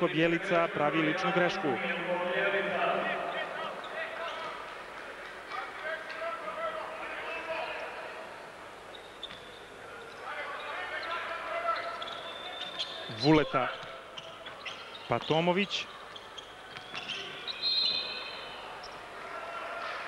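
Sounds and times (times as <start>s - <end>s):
crowd voices: 0.0s - 20.0s.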